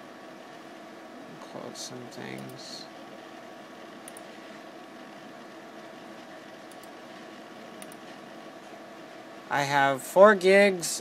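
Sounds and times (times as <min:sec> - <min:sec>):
computer hum and hiss: 0:00.0 - 0:11.0
faint mouse clicks: 0:04.0 - 0:04.3.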